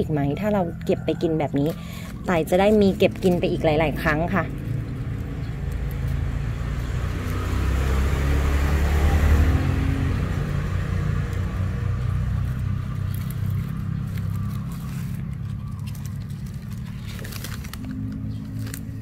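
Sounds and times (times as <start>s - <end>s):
vehicle engine passing: 0.0s - 19.0s.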